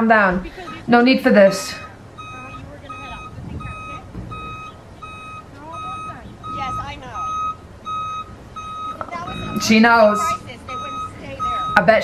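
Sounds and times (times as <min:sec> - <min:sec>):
vehicle reversing alarm beeping: 0:00.0 - 0:12.0.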